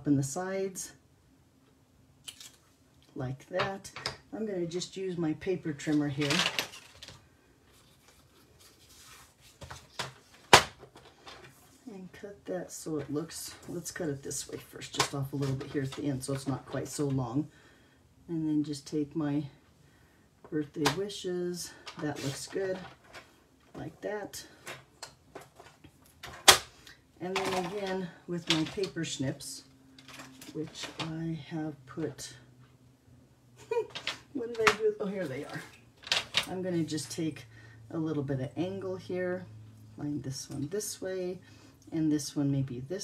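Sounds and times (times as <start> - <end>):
paper rustling: 6.2 - 11.8.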